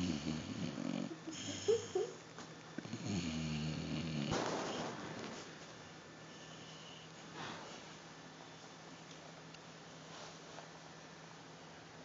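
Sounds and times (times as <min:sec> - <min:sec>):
dog snoring: 0:00.0 - 0:01.9, 0:02.8 - 0:05.4.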